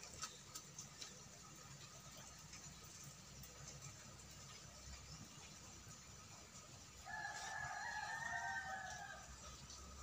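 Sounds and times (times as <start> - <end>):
rooster crowing: 7.0 - 9.5.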